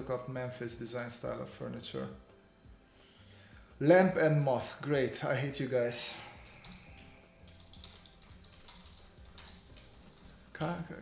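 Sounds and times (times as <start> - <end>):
computer keyboard clicks: 6.4 - 10.2.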